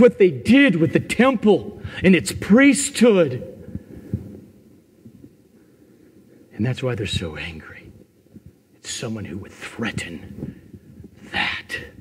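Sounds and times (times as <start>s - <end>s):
room hum: 0.0s - 12.0s
soft low thumps: 3.6s - 5.4s.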